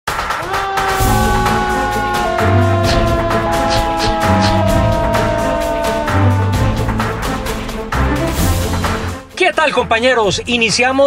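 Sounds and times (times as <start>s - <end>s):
percussion hits: 0.1s - 9.3s
theme music with held notes: 0.1s - 11.0s.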